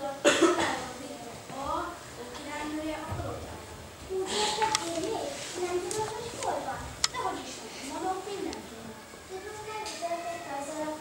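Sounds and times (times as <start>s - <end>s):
child speaking: 0.0s - 11.0s
sharp cough: 0.2s - 0.8s.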